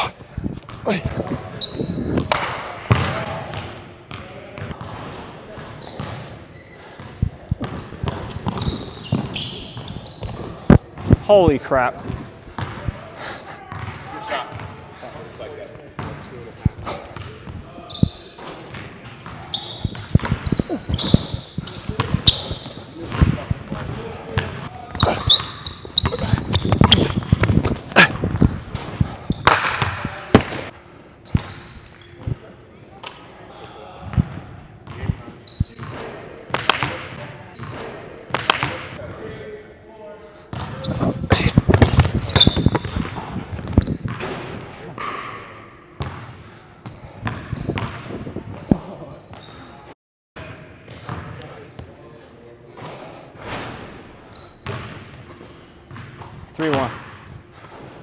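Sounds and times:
sneakers squeaking on court: 0.1s - 11.3s, 13.7s - 14.8s, 16.0s - 32.4s, 34.1s - 38.9s, 40.5s - 45.4s, 46.0s - 49.9s, 54.2s - 57.9s.

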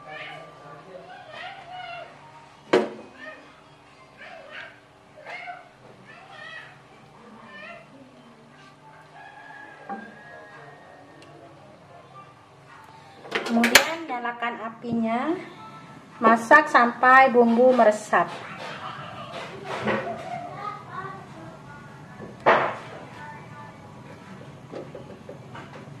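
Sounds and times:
faint voices talking: 0.0s - 26.0s.

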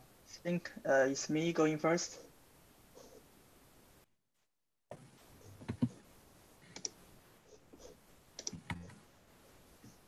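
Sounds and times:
computer mouse clicks: 6.7s - 7.0s, 8.4s - 9.0s.

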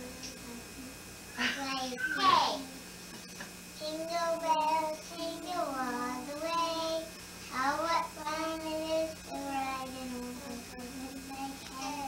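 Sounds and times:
girl singing unaccompanied: 3.8s - 12.0s.

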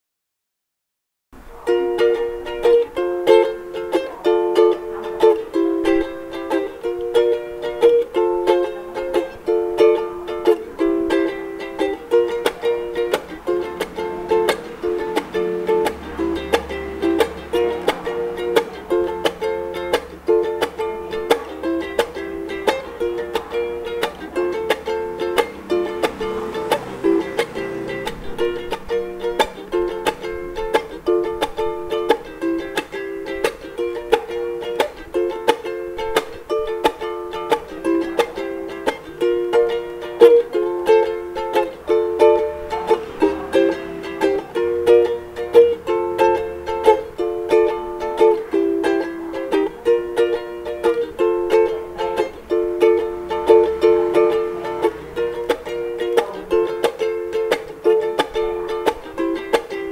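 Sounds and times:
ukulele strumming: 1.4s - 59.9s.

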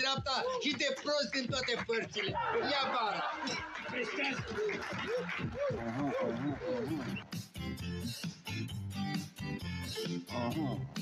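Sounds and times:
keyboard music with steady beat: 3.6s - 11.0s.

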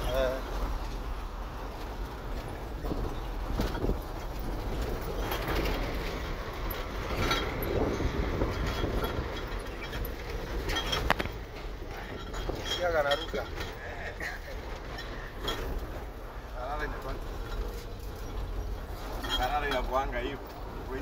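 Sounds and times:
cab rattles and clicks: 0.0s - 21.0s
diesel engine rumble: 0.0s - 21.0s.

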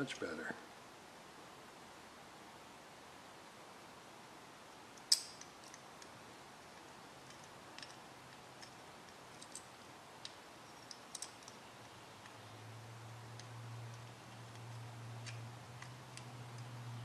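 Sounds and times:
faint ticks and clicks: 4.7s - 12.4s, 13.3s - 16.7s
metal parts clicking: 5.0s - 6.1s, 7.2s - 11.6s.

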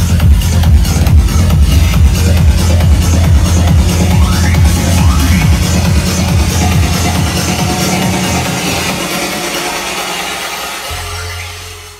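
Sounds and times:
deep steady bass tone: 0.0s - 9.8s
techno music: 0.0s - 11.9s.

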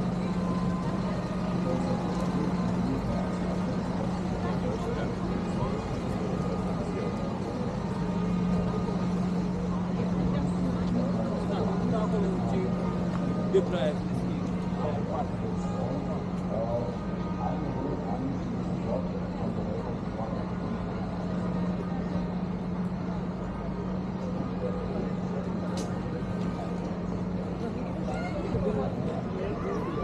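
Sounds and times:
faint indistinct voices: 0.0s - 30.0s.

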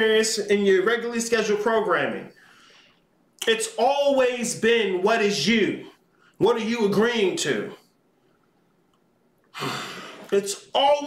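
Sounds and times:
man sighing: 9.5s - 10.3s.

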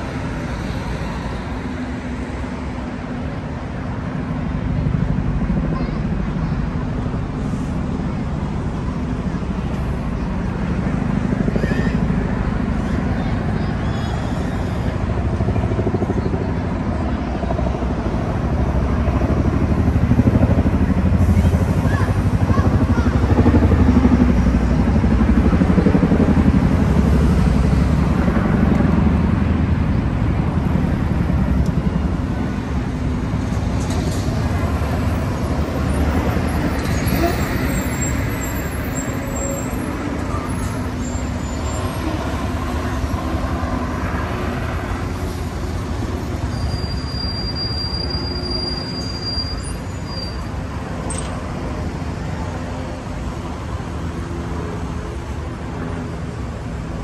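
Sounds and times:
road traffic rumble: 0.0s - 57.0s.

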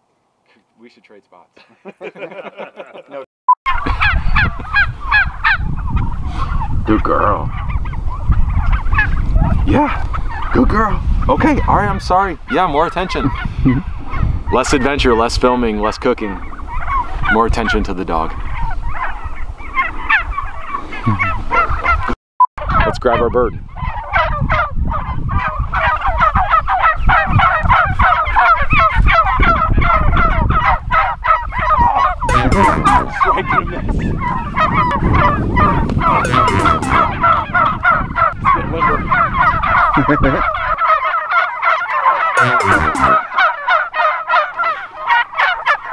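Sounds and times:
turkeys gobbling: 3.7s - 45.9s
short beep: 32.3s - 33.1s, 36.3s - 37.1s, 42.4s - 43.2s.

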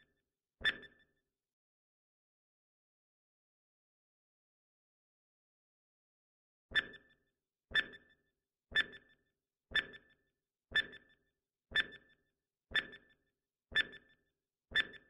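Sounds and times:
timer ticking with ringing tone: 0.6s - 1.0s, 6.7s - 15.0s.

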